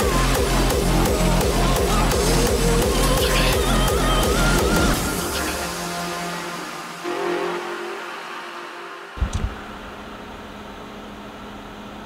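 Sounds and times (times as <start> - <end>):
music: 0.0 - 9.8.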